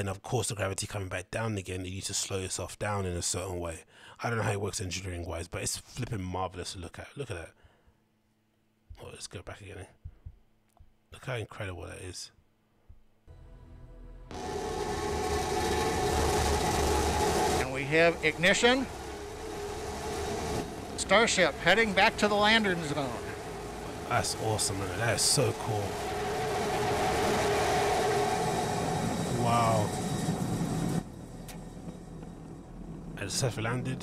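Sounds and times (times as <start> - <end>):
low hum: 13.3 - 34.0
rocket engine roaring: 14.3 - 34.0.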